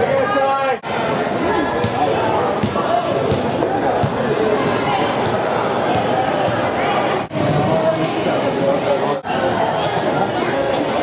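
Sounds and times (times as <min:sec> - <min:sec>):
shouting and chatter in hall: 0:00.0 - 0:11.0.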